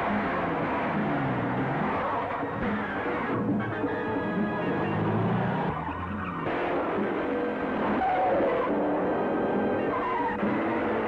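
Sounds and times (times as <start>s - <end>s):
car engine driving fast: 0.0s - 11.0s
film background music: 0.0s - 11.0s
tyres on road: 0.0s - 11.0s.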